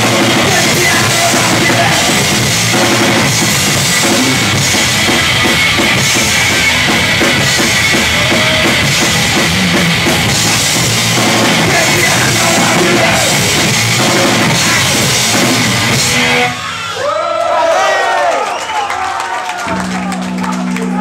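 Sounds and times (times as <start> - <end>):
fast drumming: 0.0 - 16.6
punk band playing live: 0.0 - 17.0.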